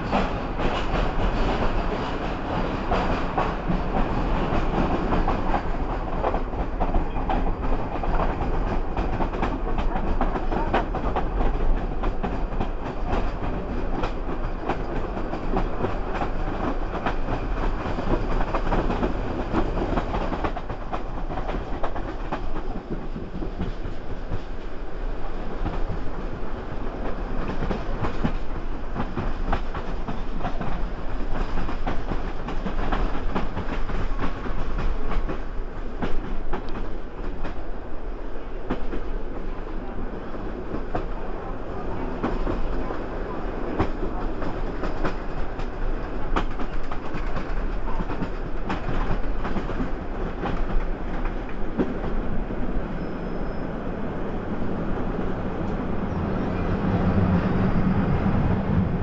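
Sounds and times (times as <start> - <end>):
train coach rolling noise: 0.0 - 59.0.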